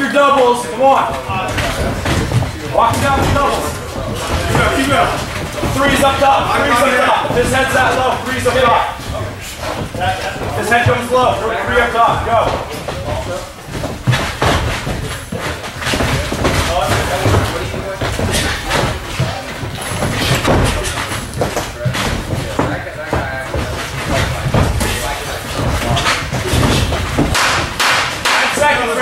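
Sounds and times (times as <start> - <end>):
footwork on ring canvas: 0.0 - 29.0
voices in gym: 0.0 - 29.0.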